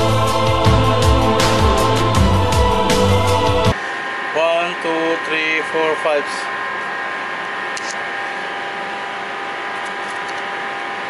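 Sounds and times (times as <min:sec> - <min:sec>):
steady machinery hum: 0:00.0 - 0:11.0.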